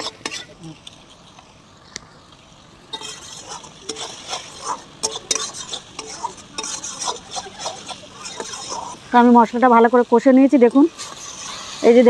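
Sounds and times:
metal spatula scraping iron pan: 0.0 - 1.4, 2.9 - 12.0
paste sizzling in oil: 0.0 - 12.0.

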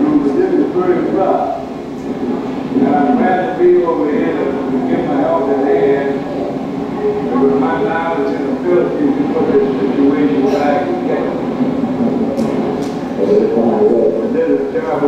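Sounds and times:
indistinct voices over loudspeakers: 0.0 - 15.0
storm wind rushing: 0.0 - 15.0.

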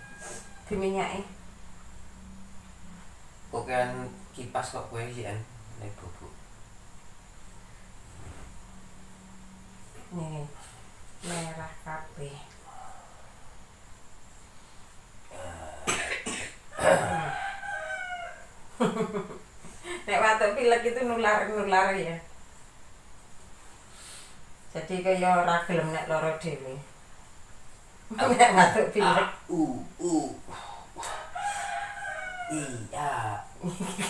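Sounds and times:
rooster crowing: 0.0 - 1.3, 16.7 - 19.4, 31.0 - 33.7
man coughing: 15.8 - 17.3
long drawn-out call: 31.0 - 33.4.

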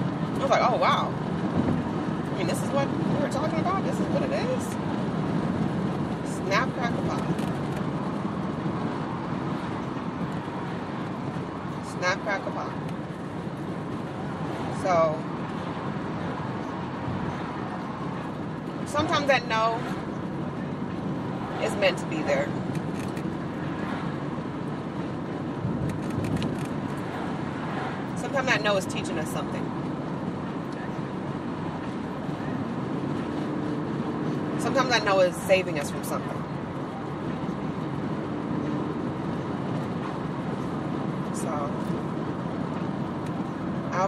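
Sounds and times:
car road noise inside cabin: 0.0 - 44.0.

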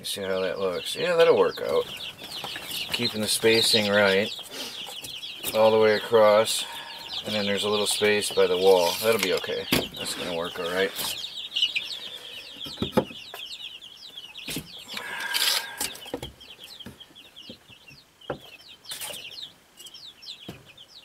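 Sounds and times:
young birds chirping: 0.0 - 21.0.

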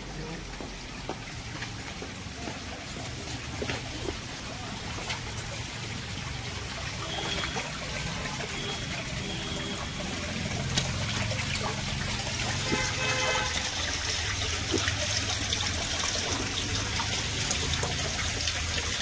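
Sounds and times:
water trickling and splashing on stone: 0.0 - 19.0.

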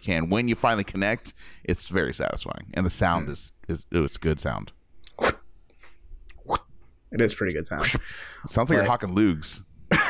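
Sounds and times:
person making throaty hawking sounds: 5.1 - 5.4, 6.3 - 6.7.

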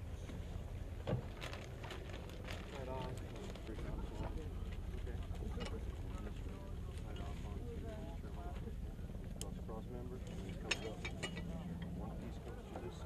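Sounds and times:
men talking: 2.7 - 13.0.

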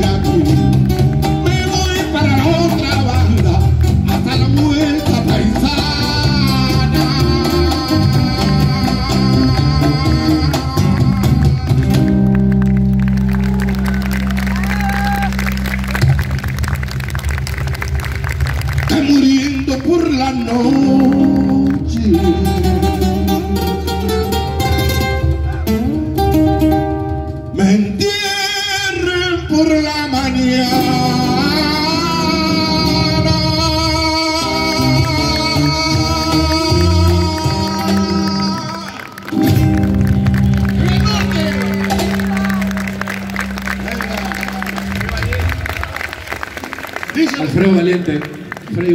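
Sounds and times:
person singing: 0.0 - 12.4, 18.9 - 24.7, 27.5 - 39.7
guitars: 0.0 - 46.7.

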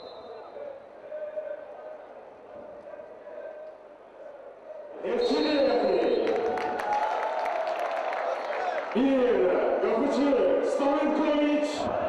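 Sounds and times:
quiet stadium ambience: 0.0 - 12.0.

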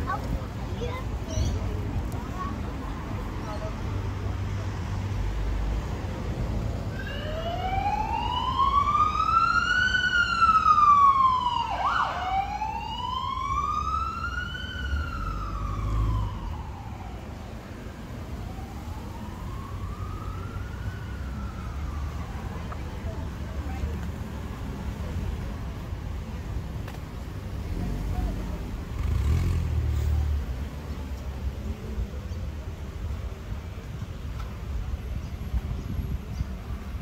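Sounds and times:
street traffic rumble: 0.0 - 37.0
emergency vehicle siren wailing: 6.9 - 22.9.

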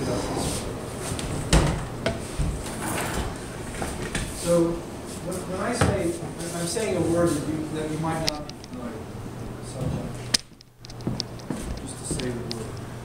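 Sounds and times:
people talking: 0.0 - 0.7, 4.4 - 10.3, 11.7 - 12.8.

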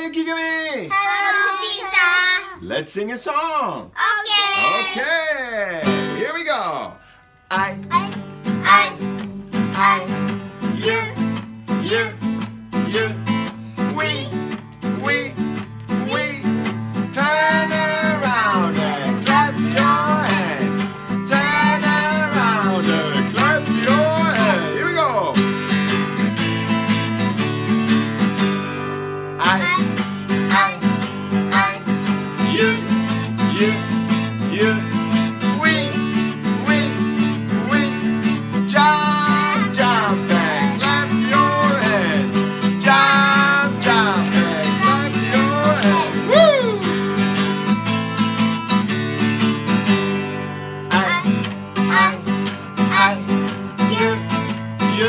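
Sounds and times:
strummed acoustic guitar: 0.9 - 2.6, 4.1 - 55.0
children singing: 4.5 - 5.0, 17.2 - 20.7, 29.5 - 32.9, 38.7 - 46.4, 50.9 - 55.0.

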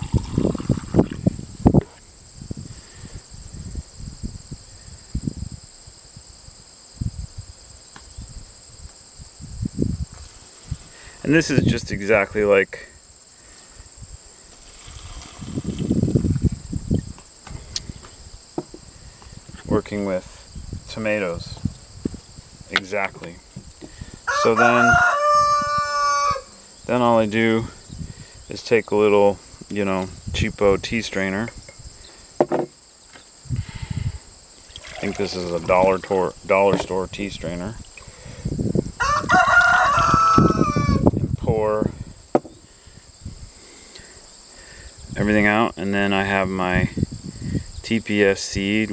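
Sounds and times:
glass jar handling noise: 0.0 - 1.2, 31.4 - 31.8, 32.4 - 32.7, 34.7 - 37.0
crickets chirring: 0.0 - 48.9
sharp knock: 32.4 - 32.7, 42.4 - 42.6.

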